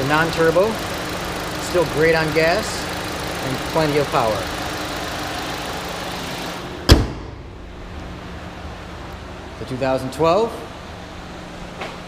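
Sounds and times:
car engine idling: 0.0s - 12.0s
car hood slamming shut: 6.8s - 7.6s.

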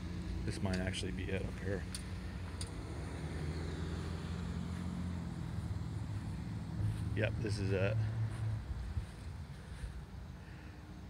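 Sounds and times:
traffic rumble and hum: 0.0s - 11.0s.

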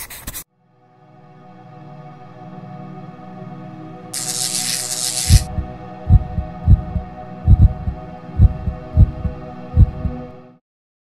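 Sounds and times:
short hiss: 4.2s - 5.5s
heartbeat thumps: 5.3s - 10.2s.

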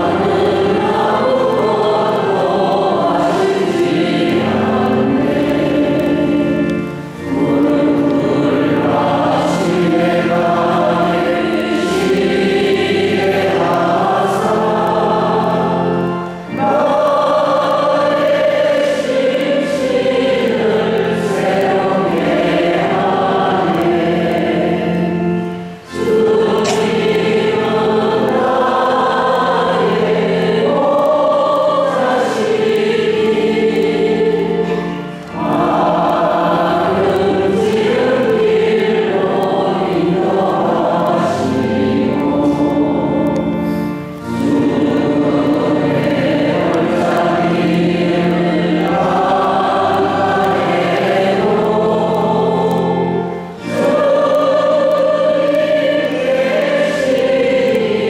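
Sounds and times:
choir singing a slow hymn: 0.0s - 58.0s.

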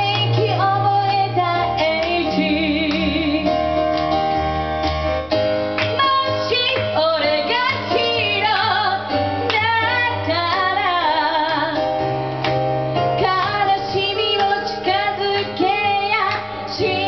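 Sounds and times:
woman singing pop song: 0.0s - 3.8s, 5.8s - 12.0s, 13.0s - 17.0s
keyboard playing sustained chords: 0.0s - 17.0s.

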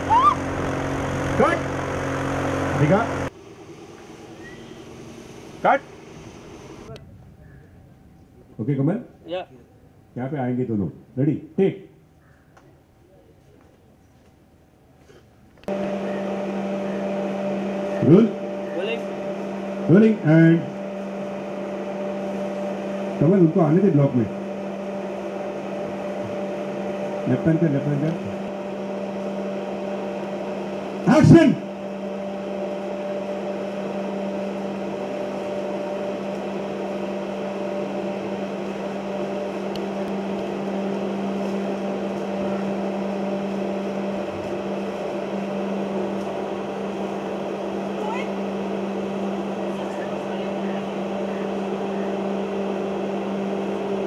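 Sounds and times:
woman's short high cries: 0.0s - 0.4s
low engine-like hum: 0.0s - 54.0s.

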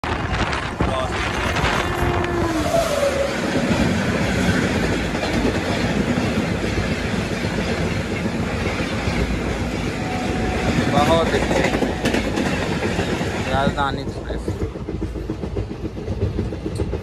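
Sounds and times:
passing locomotive falling tone: 0.0s - 17.0s
train wheels rumbling on rails: 0.0s - 17.0s.

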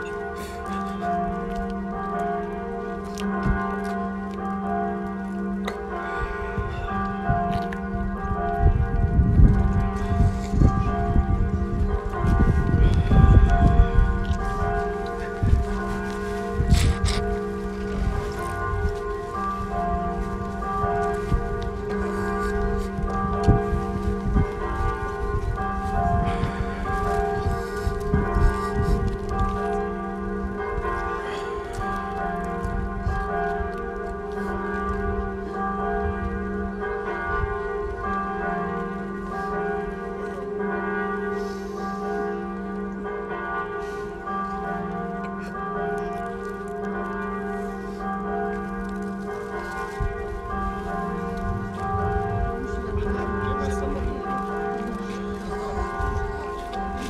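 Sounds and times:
bells ringing: 0.0s - 57.0s
low rumble: 51.4s - 54.2s.

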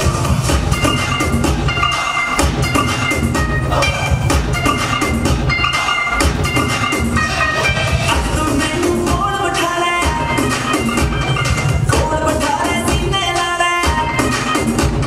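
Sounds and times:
loud dance music: 0.0s - 15.0s.

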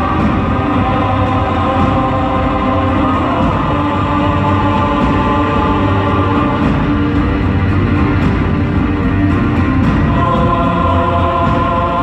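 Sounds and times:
choir holding sustained notes: 0.0s - 12.0s.

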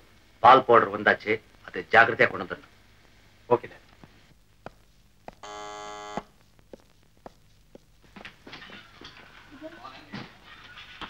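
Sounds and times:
electric buzzer: 5.4s - 6.3s
footsteps: 6.0s - 11.0s.

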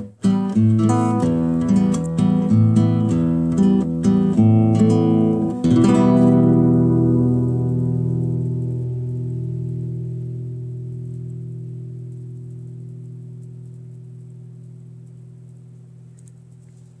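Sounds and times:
acoustic guitar chord ringing: 0.0s - 15.4s.

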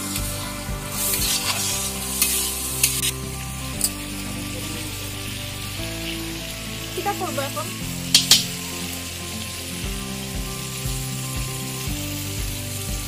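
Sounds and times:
metal spatula scraping a pan: 0.0s - 4.6s
food sizzling in oil: 0.0s - 13.0s.

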